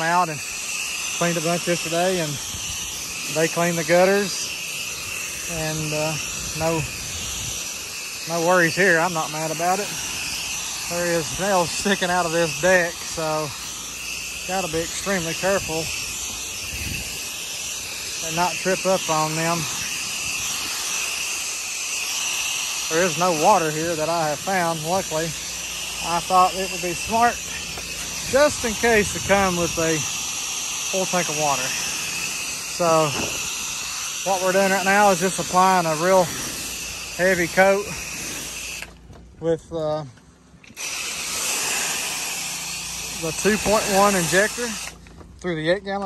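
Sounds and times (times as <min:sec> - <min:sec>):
pressure washer spraying water: 0:00.0 - 0:39.1, 0:40.3 - 0:45.2.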